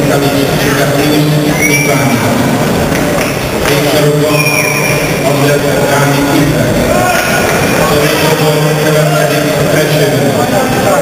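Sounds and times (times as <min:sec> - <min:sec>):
man speaking: 0:00.0 - 0:02.5, 0:03.6 - 0:11.0.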